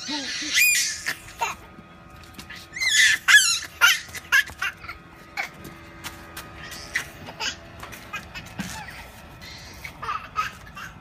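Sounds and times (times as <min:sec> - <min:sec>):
child squealing and laughing: 0:00.0 - 0:01.7, 0:02.6 - 0:05.6, 0:06.6 - 0:11.0.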